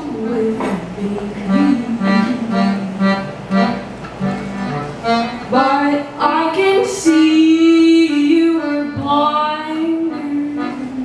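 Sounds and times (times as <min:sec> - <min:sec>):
piano accordion playing chords: 0:00.0 - 0:11.0.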